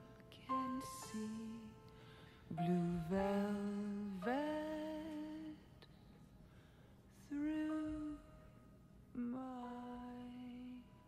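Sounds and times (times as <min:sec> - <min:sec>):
woman singing sustained note: 0:00.0 - 0:01.9, 0:02.5 - 0:05.8, 0:07.2 - 0:11.0.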